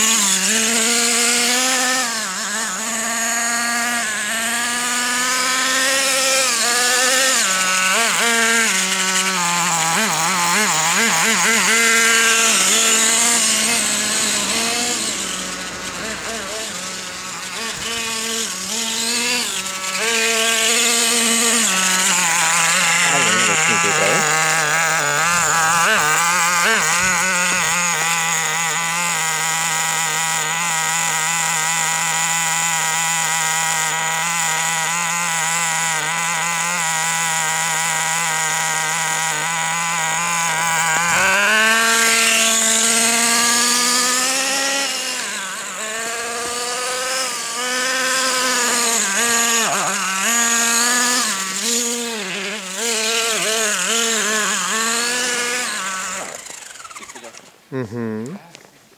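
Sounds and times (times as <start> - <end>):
small nitro engine revving: 0.0 - 58.7.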